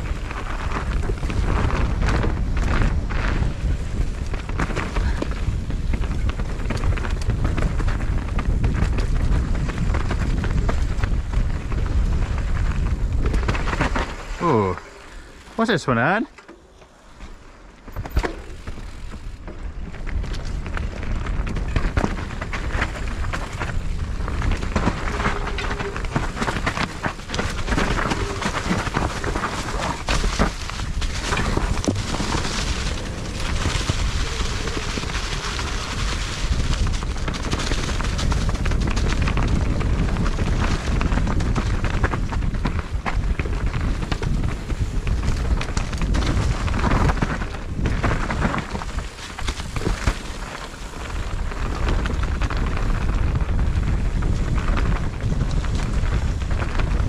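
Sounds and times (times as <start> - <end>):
wind noise on microphone: 0.0 - 15.7, 17.0 - 57.0
bike rattling over bumps: 0.0 - 57.0
tyres on dirt and leaves: 0.0 - 57.0.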